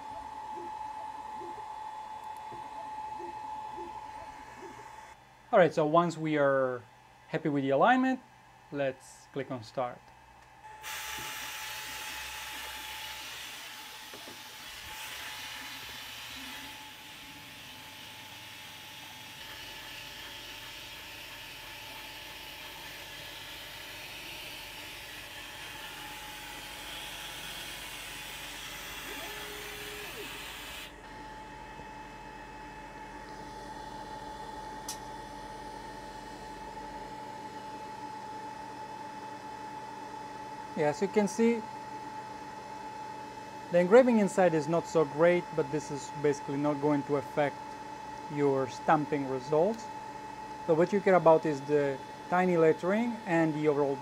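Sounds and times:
constant whine: 0.0s - 6.4s
laser engraver hiss: 10.7s - 30.9s.

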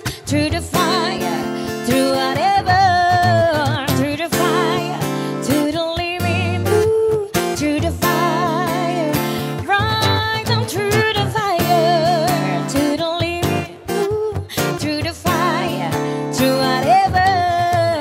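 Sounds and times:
guitar: 0.0s - 18.0s
woman singing with vibrato: 0.0s - 18.0s.

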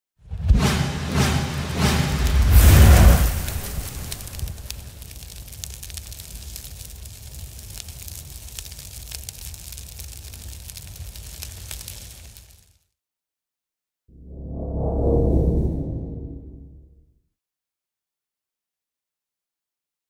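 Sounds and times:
crackling flames with pops: 1.7s - 12.9s.

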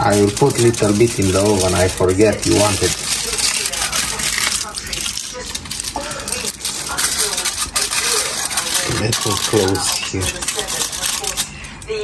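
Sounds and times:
aluminium foil crinkling: 0.0s - 12.0s.

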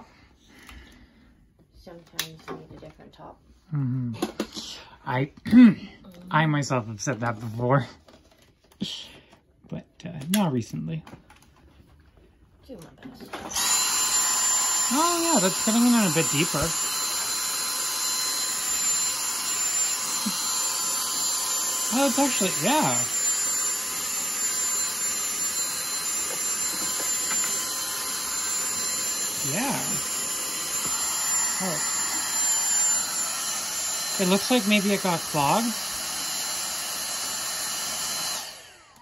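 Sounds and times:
handheld vacuum running: 4.2s - 4.7s, 13.1s - 39.0s.

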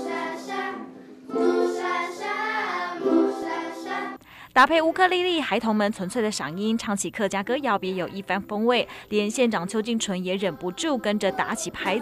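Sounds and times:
ukuleles: 0.0s - 4.1s
children singing: 0.0s - 4.2s.

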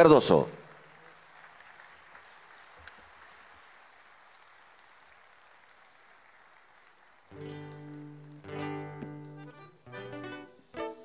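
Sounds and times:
faint audience applause: 0.0s - 9.3s.

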